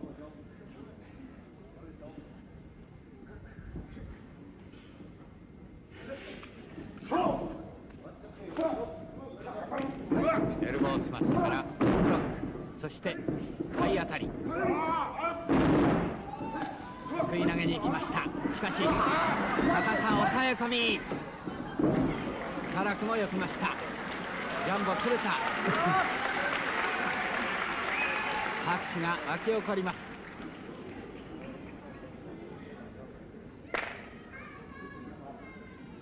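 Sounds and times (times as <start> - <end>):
crowd noise: 13.4 - 36.0
voices shouting: 16.2 - 21.8.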